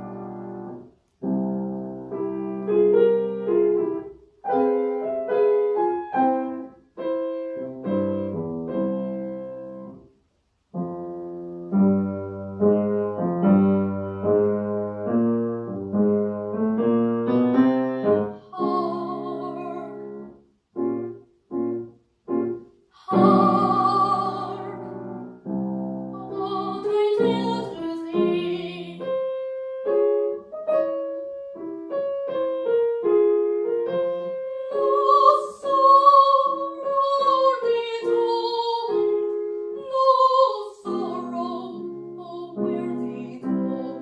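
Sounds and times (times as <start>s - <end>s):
slow classical piano: 0.0s - 44.0s.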